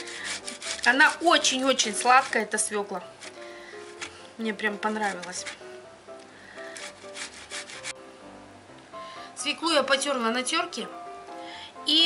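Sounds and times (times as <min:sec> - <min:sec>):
grating on metal grater: 0:00.0 - 0:04.2, 0:05.0 - 0:05.6, 0:06.6 - 0:08.0
faint background music: 0:00.0 - 0:12.0.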